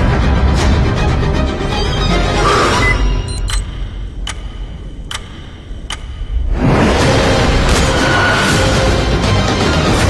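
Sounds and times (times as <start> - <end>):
timer ticks: 3.3 - 6.4.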